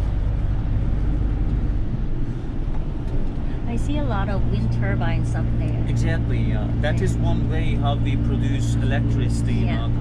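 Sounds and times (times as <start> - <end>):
vehicle engine and tyre rumble: 0.0 - 10.0.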